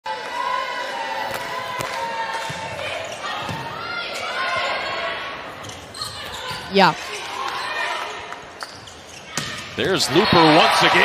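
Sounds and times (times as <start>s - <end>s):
volleyball hits: 1.2s - 4.7s
sneakers squeaking on floor: 5.5s - 9.8s.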